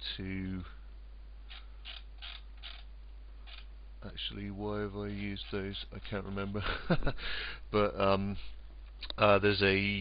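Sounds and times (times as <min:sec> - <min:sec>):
mouse scroll wheel clicking: 0:01.5 - 0:03.7.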